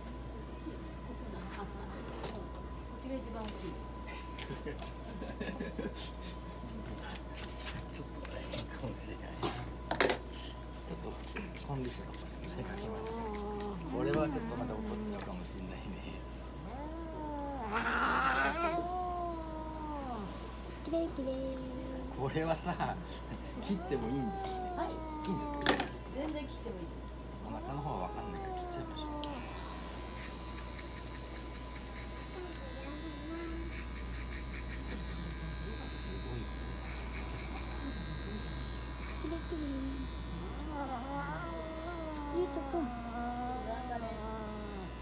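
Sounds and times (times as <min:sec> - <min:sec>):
electric pet clipper buzzing: 0:11.0 - 0:16.0, 0:16.6 - 0:26.8, 0:27.4 - 0:45.0
cat yowling: 0:16.7 - 0:20.3, 0:23.8 - 0:25.9, 0:27.4 - 0:29.8, 0:40.6 - 0:44.8.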